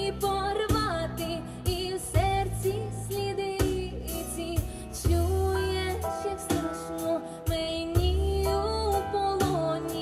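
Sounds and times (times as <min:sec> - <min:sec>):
instrumental accompaniment with beat: 0:00.0 - 0:10.0
woman singing into a microphone: 0:00.0 - 0:10.0.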